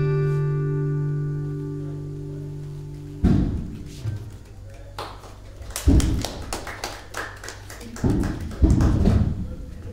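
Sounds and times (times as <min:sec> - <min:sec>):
low thump: 0:03.2 - 0:03.8
audience clapping: 0:04.1 - 0:09.2.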